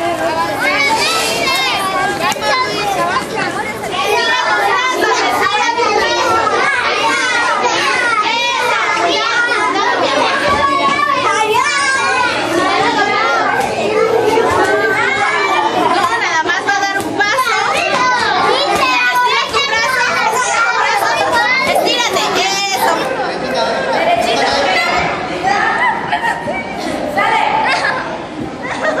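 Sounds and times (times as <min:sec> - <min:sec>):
children shouting and chattering: 0:00.0 - 0:29.0.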